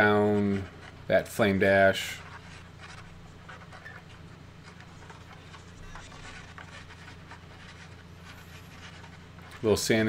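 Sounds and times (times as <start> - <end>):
steady low hum: 0.0 - 10.0
scraper scratching wood: 2.0 - 10.0.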